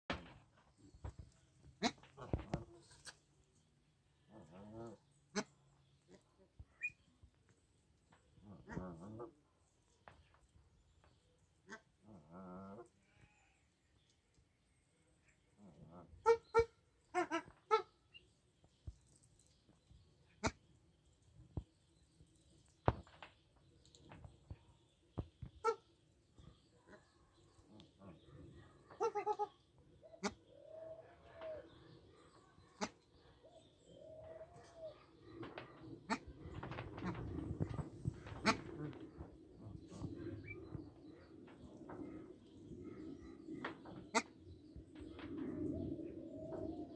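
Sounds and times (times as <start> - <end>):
rustling: 34.3 - 44.2.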